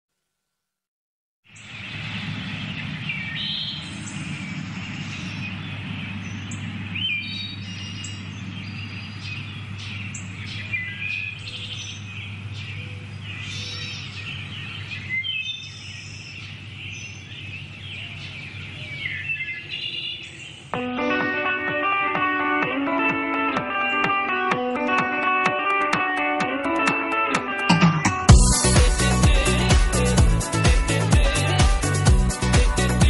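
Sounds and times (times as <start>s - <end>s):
birds chirping and trilling: 1.5s - 33.0s.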